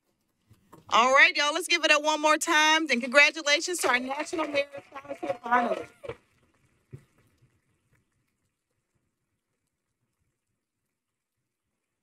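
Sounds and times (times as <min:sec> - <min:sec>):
audience applause: 0:03.8 - 0:06.2.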